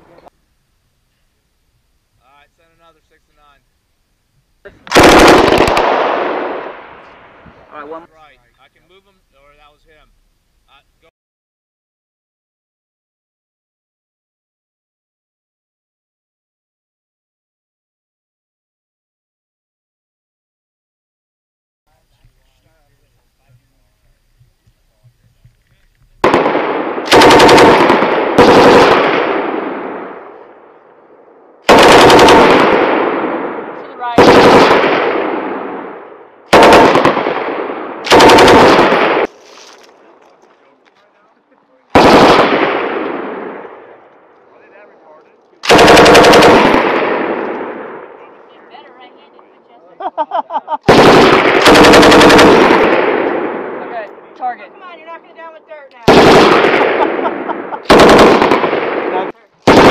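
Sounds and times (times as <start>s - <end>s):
machine gun bursts with echo: 4.9s - 7.0s, 26.2s - 30.4s, 31.6s - 39.3s, 41.9s - 43.9s, 45.6s - 48.3s, 50.9s - 53.8s, 56.0s - 59.9s.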